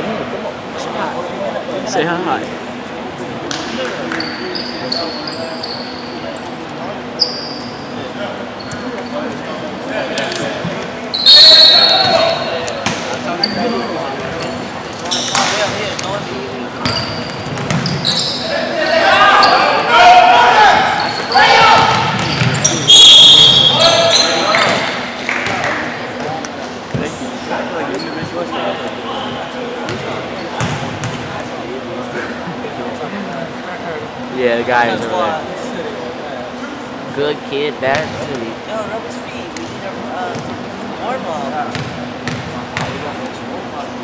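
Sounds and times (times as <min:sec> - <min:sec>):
sneakers squeaking: 0:03.5 - 0:09.8, 0:10.4 - 0:19.9, 0:20.5 - 0:28.6, 0:29.2 - 0:31.6, 0:39.5 - 0:40.7, 0:41.6 - 0:43.5
basketball bouncing: 0:16.8 - 0:18.0, 0:30.6 - 0:31.2
players shouting: 0:18.1 - 0:25.0.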